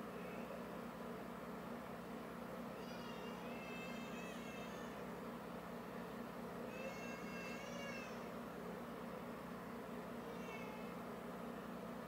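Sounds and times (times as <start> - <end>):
cat meowing: 10.3 - 11.0.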